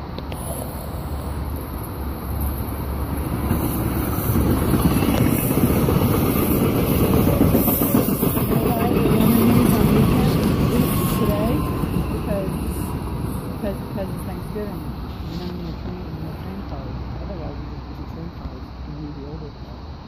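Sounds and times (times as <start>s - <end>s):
rushing air: 0.0s - 8.6s, 9.3s - 17.2s
train wheels rumbling on rails: 0.0s - 18.6s.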